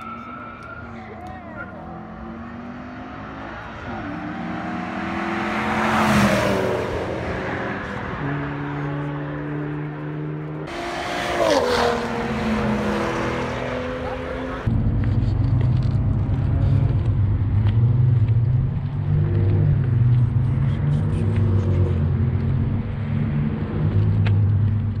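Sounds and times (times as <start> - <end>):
car engine running close by: 1.2 - 25.0
car passing by: 2.2 - 14.7.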